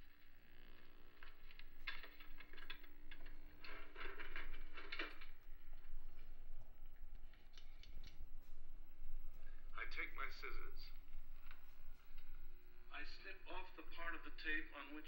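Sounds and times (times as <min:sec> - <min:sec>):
scattered clicks and taps: 0:01.2 - 0:05.3.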